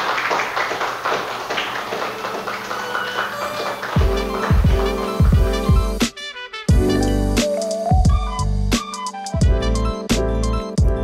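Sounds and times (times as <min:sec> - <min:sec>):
audience applauding: 0:00.0 - 0:06.0.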